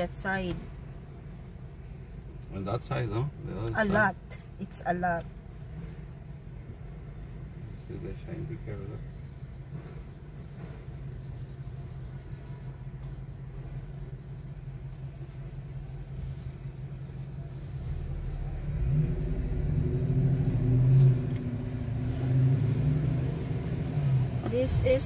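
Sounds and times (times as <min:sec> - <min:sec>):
car engine and road rumble: 0:00.0 - 0:25.0.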